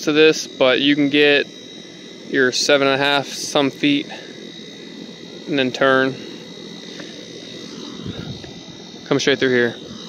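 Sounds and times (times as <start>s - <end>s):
high insect drone: 0.0s - 10.0s.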